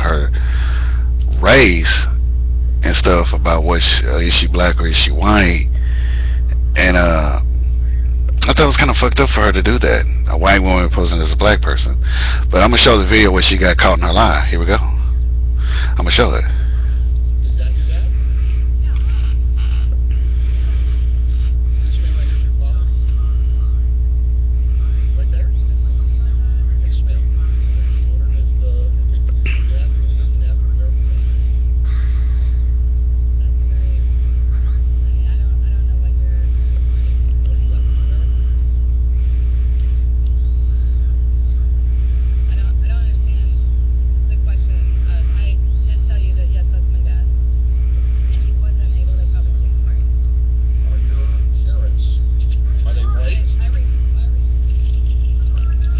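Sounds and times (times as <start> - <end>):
loud electrical hum: 0.0 - 55.9
faint tv speech: 6.4 - 55.9.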